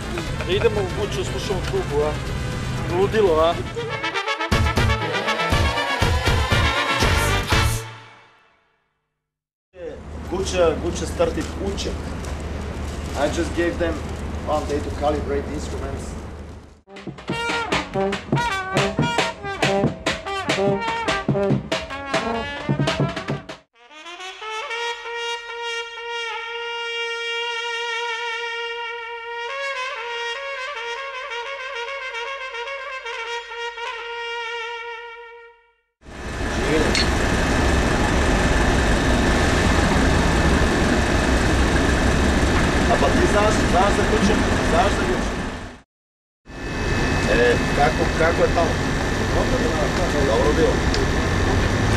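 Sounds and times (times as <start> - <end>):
street traffic noise: 0.0 - 5.8, 9.8 - 16.8, 36.0 - 45.8, 46.5 - 51.9
trumpet playing: 3.4 - 8.7, 16.9 - 35.8.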